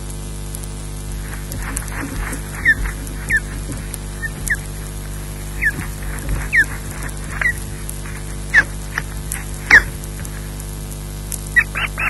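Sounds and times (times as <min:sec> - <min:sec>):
steady low hum: 0:00.0 - 0:12.0
osprey whistled calls: 0:01.2 - 0:10.5, 0:11.5 - 0:12.0.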